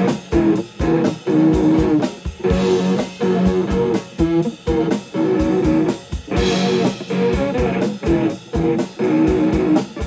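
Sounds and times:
electric guitar chords: 0.0 - 10.0.

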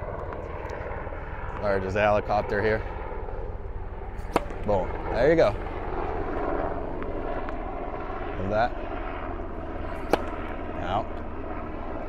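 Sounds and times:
helicopter drone overhead: 0.0 - 12.0
tennis racket striking ball: 4.2 - 4.7, 10.0 - 10.5.

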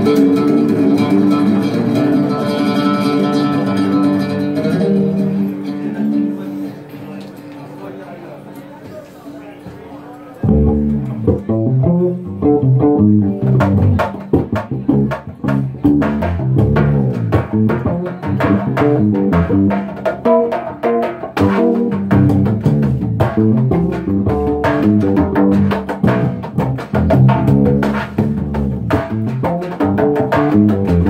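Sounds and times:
hand drum strikes: 0.0 - 5.5, 10.5 - 31.0
plucked bass line: 0.0 - 6.4, 10.4 - 31.0
plucked string melody: 0.0 - 7.2, 10.4 - 31.0.

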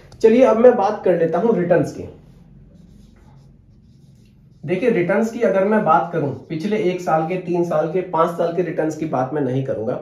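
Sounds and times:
marker pen writing on whiteboard: 0.0 - 9.1.

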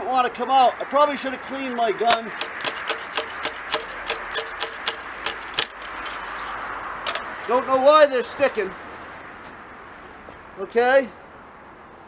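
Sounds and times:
metallic tapping on shotgun: 1.7 - 6.4.

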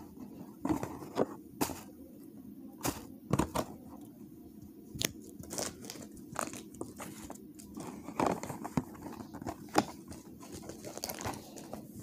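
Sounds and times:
foil wrapper crackling: 5.0 - 7.8
cardboard box crinkling: 5.4 - 12.0.

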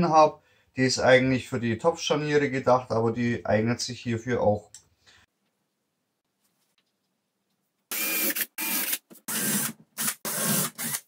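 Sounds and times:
cordless drill boring holes: 7.9 - 11.0.

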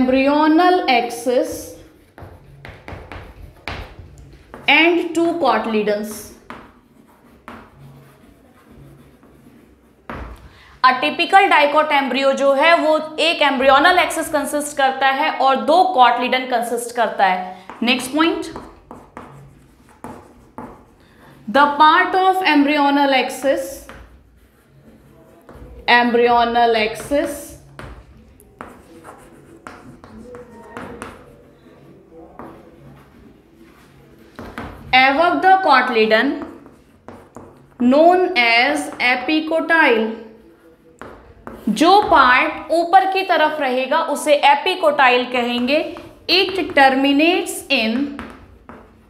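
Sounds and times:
chalk scratching on chalkboard: 1.1 - 10.4, 16.9 - 43.2, 45.2 - 49.0.

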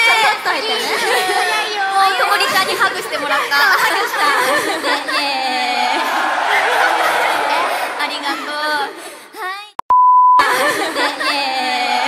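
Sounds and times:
voices in a hall: 0.0 - 9.8, 10.5 - 12.0
censor bleep: 9.9 - 10.4.

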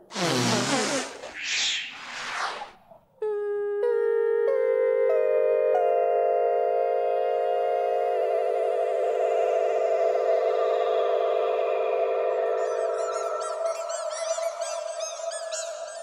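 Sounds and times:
shimmering synthesized tone: 6.8 - 15.6
twinkly sparkle chirps: 12.0 - 15.8.

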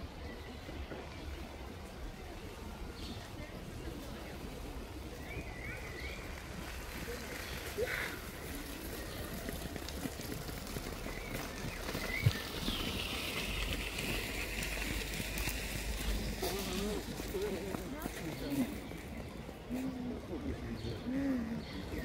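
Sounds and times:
faint indistinct voices: 0.0 - 22.0.

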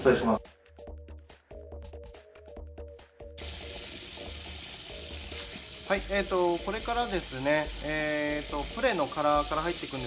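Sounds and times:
background music: 0.0 - 10.0
hand shower spraying water: 3.4 - 10.0.

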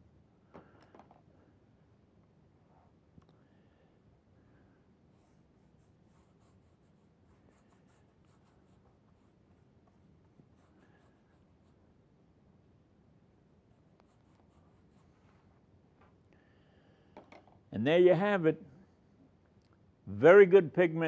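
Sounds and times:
low room hum: 0.0 - 21.0
paintbrush strokes on paper: 5.1 - 11.9, 13.6 - 15.7.

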